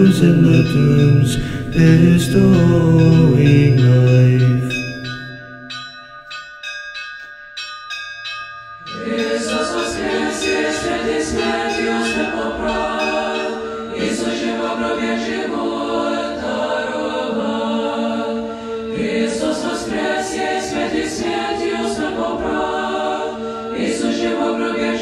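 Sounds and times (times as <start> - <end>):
choir singing a cappella: 0.0 - 5.1, 8.8 - 25.0
choir chanting: 0.0 - 5.8, 8.8 - 25.0
small bells jingling: 0.0 - 14.6.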